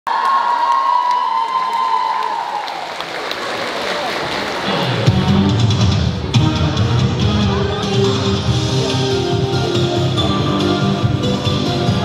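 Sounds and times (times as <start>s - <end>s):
audience applauding and cheering: 0.1s - 5.2s
backing music with bass-heavy beat: 4.7s - 12.0s.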